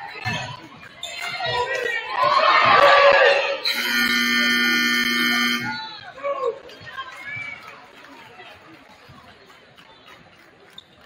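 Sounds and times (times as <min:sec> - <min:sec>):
crowd chatter: 0:00.0 - 0:11.0
scoreboard buzzer steady tone: 0:03.7 - 0:05.8.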